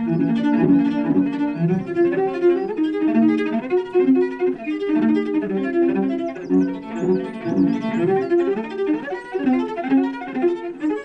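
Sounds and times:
solo bowed cello: 0.0 - 11.0.

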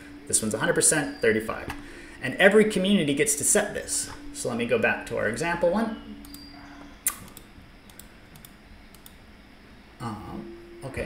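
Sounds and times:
computer mouse clicks: 6.2 - 9.2.

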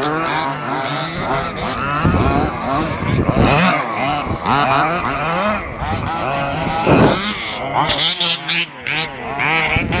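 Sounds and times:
rc buggy engines revving: 0.0 - 10.0.

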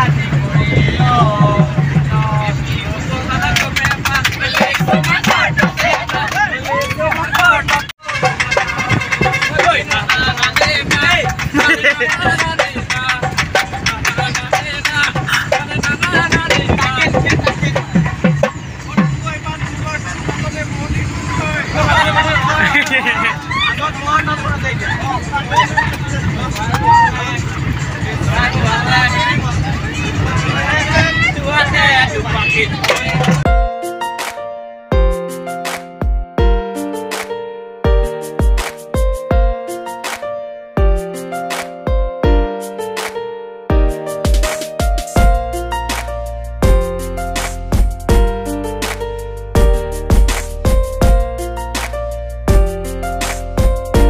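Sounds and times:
people's voices: 0.0 - 33.5
moving bus rumble: 0.0 - 34.5, 43.8 - 54.0
young men singing and shouting: 0.1 - 19.1.

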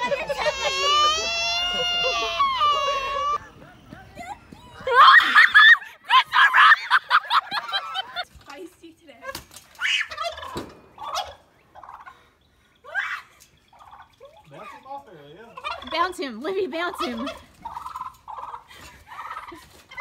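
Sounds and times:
rapid fowl calls: 9.8 - 12.3, 15.5 - 16.1, 16.9 - 20.0
turkey gobbling: 9.9 - 12.3, 13.6 - 20.0.

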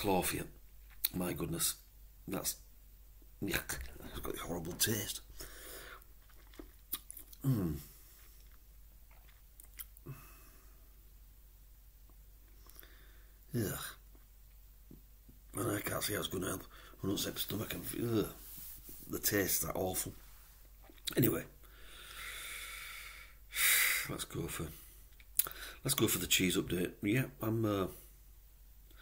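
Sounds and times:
man breathing: 5.3 - 6.1, 10.0 - 11.0, 12.6 - 13.4, 21.6 - 24.1, 24.8 - 25.8
mouth clicks and lip smacks: 6.0 - 7.4, 8.3 - 10.0, 20.8 - 21.2, 25.1 - 25.6
man grunting: 7.4 - 7.8.

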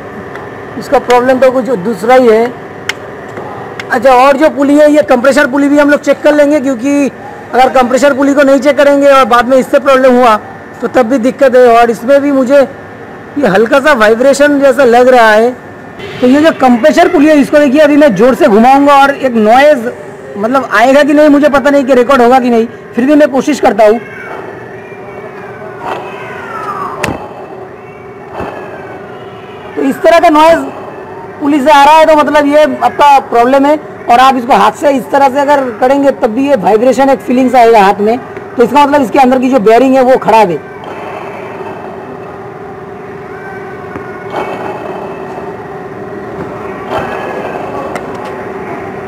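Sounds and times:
steady hum: 0.0 - 49.0
pulley bearing whine: 38.5 - 49.0.

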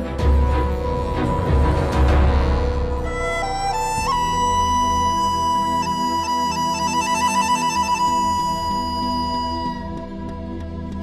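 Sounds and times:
wind instrument trill and note: 0.6 - 10.0.

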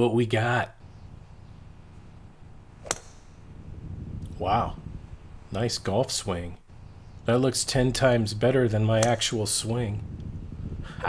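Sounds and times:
faint low background noise: 0.0 - 11.0.

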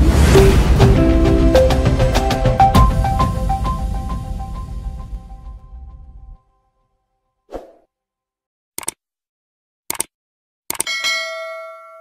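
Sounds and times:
short clicks: 8.8 - 9.0, 9.9 - 10.1, 10.7 - 10.9
notification bell chime: 10.9 - 12.0.

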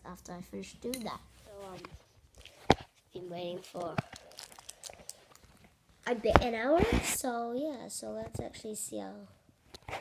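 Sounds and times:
soft rustling: 1.1 - 7.4.

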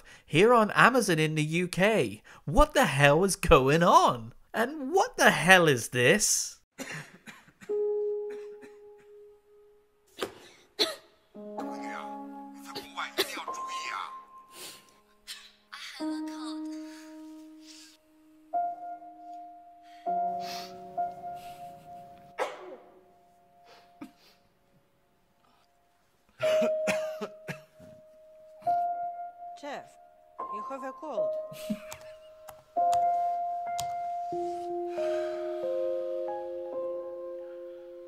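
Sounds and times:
man coughing: 6.8 - 9.2, 10.2 - 11.1, 12.8 - 13.5, 22.4 - 22.9, 26.4 - 27.8
soft music chords: 11.4 - 38.0.

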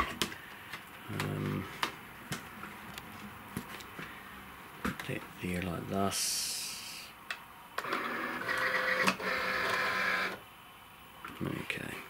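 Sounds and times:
cutting machine motor whirring: 7.8 - 10.4.

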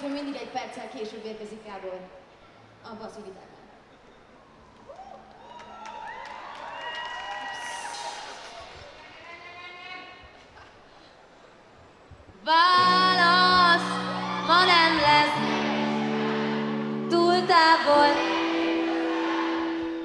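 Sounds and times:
person singing: 12.6 - 20.0
bass: 12.7 - 20.0
electric guitar sliding notes: 12.8 - 20.0.

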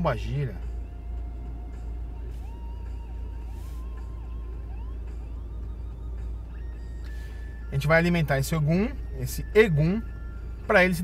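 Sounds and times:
faint slow background music: 0.0 - 11.0.

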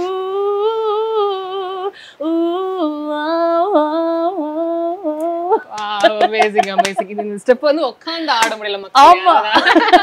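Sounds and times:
woman singing unaccompanied: 0.0 - 7.5.

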